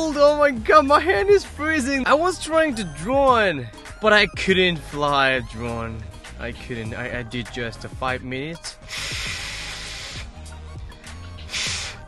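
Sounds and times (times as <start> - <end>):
background music: 0.0 - 12.0
breath blown into hands: 8.8 - 10.4, 11.4 - 12.0.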